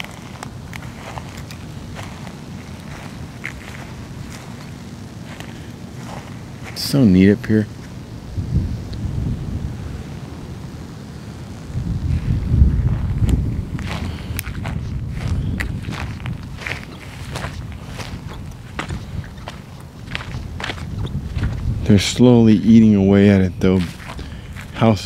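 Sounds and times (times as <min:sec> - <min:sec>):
footsteps crunching on dry grass: 0:00.0 - 0:09.6, 0:11.4 - 0:25.0
steady low rumble: 0:00.0 - 0:25.0.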